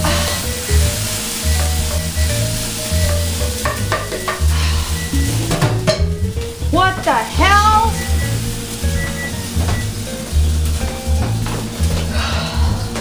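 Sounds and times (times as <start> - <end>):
background music with bass: 0.0 - 13.0
pot boiling with sizzling hiss: 0.0 - 13.0
clicks and knocks: 3.6 - 4.5.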